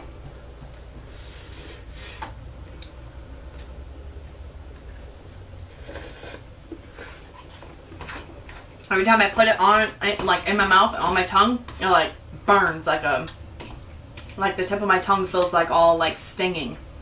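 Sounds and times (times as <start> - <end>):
person slurping noodles: 5.7 - 7.5.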